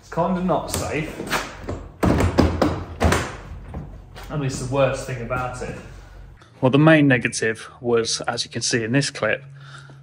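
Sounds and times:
plastic box knocking and clunking: 1.7 - 3.9.

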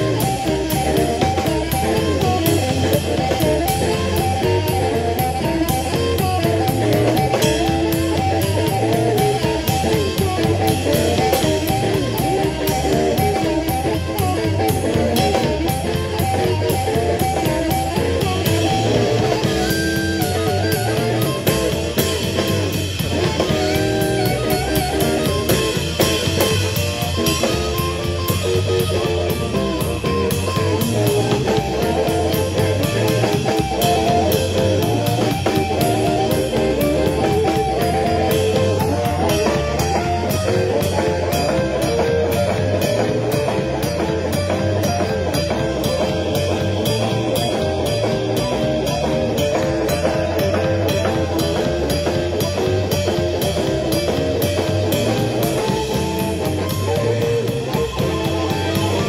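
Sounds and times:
blues band playing: 0.0 - 59.0
drum kit with cymbal strokes: 0.0 - 59.0
electric guitars: 0.0 - 59.0
harmonica: 0.0 - 59.0.

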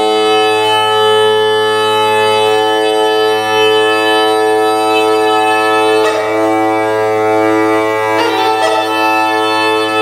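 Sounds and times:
bagpipe holding steady tones: 0.0 - 10.0.

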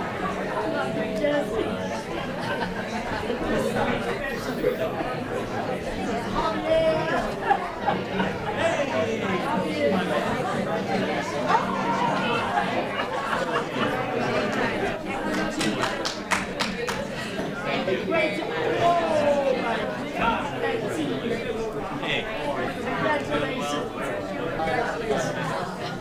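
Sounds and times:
hubbub of overlapping conversation: 0.0 - 26.0.

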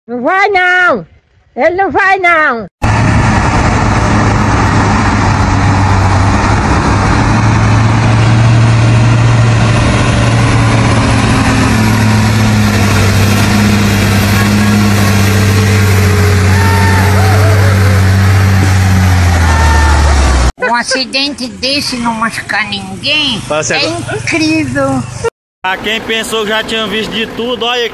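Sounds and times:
diesel truck engine drone: 2.8 - 27.9.

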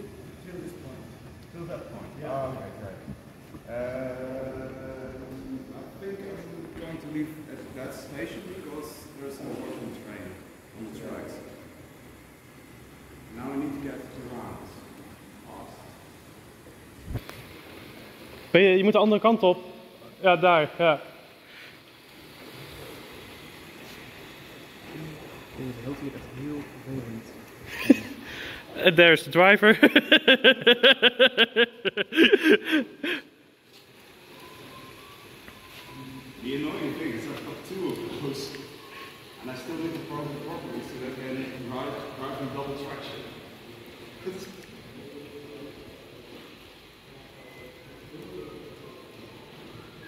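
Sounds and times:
room noise: 0.0 - 50.0.

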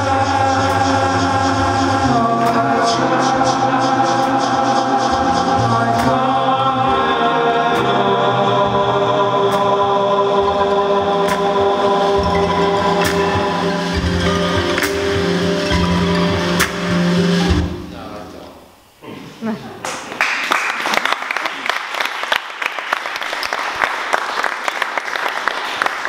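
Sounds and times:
live band music with singing: 0.0 - 18.2.

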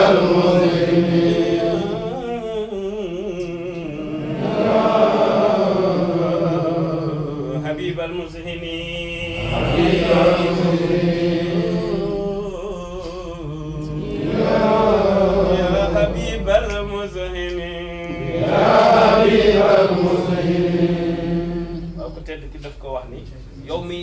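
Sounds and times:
men chanting unaccompanied: 0.0 - 22.4.

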